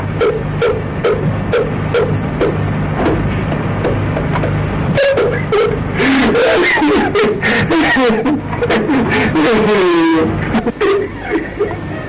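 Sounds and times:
man chuckling: 5.6s - 9.7s, 10.4s - 12.0s.

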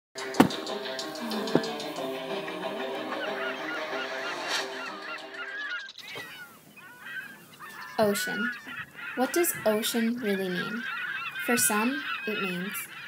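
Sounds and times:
flock of birds squawking: 0.2s - 13.0s.

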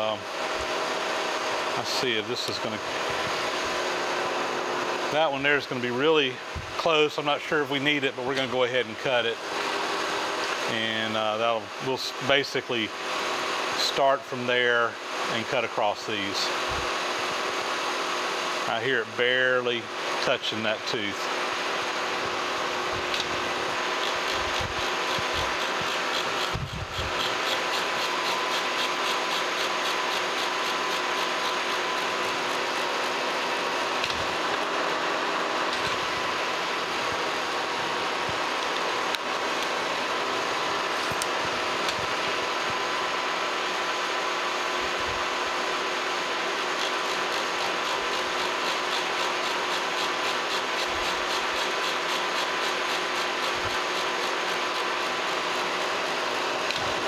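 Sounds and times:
milling machine humming: 0.0s - 57.0s.

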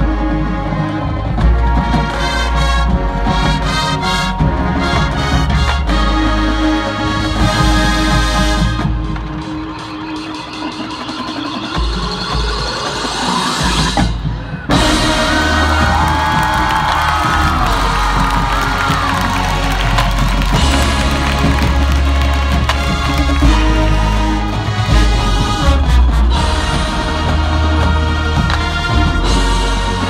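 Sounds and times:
marching band brass and percussion: 0.0s - 30.0s.

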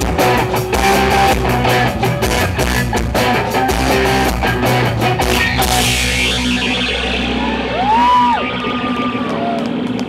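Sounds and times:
rock band playing: 0.0s - 10.0s
sliding high guitar tones: 0.0s - 10.0s.

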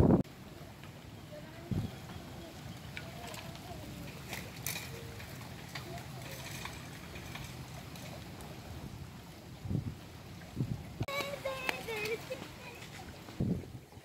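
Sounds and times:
wind rumble on microphone: 0.0s - 0.4s, 1.4s - 14.0s
churning pond water: 0.0s - 14.0s
faint distant voices: 0.4s - 14.0s.

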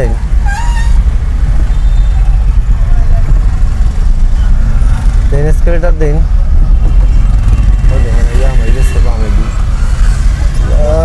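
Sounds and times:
car engine rumble: 0.0s - 11.0s
road noise inside car: 0.0s - 11.0s.

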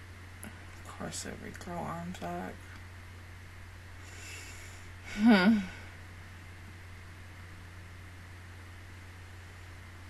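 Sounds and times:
low microphone hum: 0.0s - 10.0s
breath through the nose: 4.0s - 5.0s.

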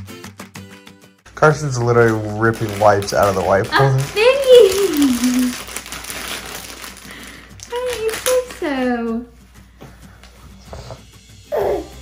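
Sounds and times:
high-pitched wordless voice: 3.7s - 5.5s.

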